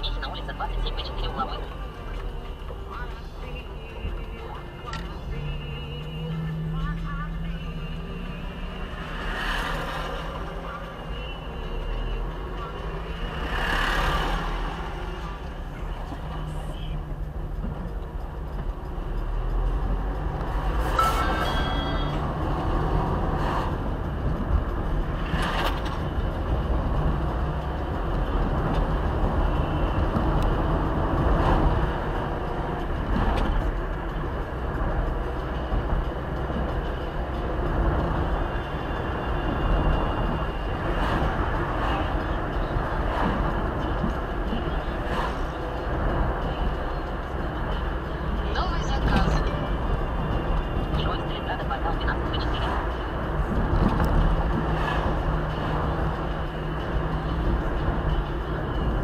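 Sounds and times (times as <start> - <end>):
car engine and tyre rumble: 0.0 - 59.0.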